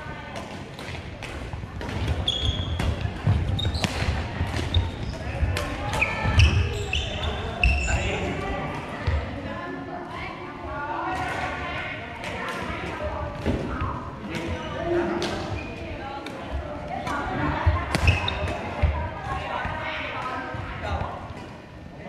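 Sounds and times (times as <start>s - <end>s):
rackets hitting shuttlecock: 0.3s - 4.9s
sneakers squeaking on court: 1.9s - 8.2s, 17.7s - 19.0s.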